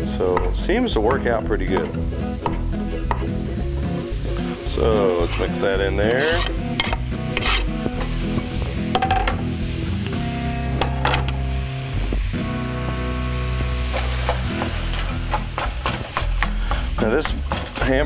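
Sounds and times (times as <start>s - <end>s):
food sizzling in a skillet: 2.0s - 18.0s
spatula scraping pan: 5.0s - 8.2s.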